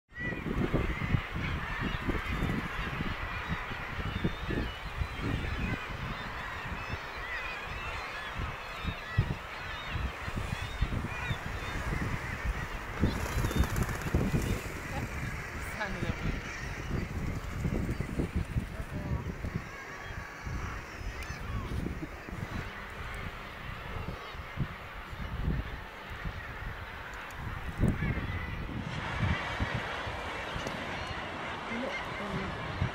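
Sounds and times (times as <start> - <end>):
seabirds calling: 0.1 - 32.9
wind buffeting microphone: 0.1 - 32.9.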